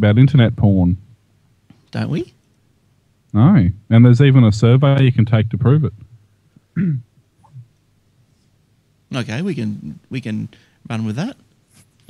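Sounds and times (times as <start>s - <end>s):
person clearing throat: 6.7s - 7.7s.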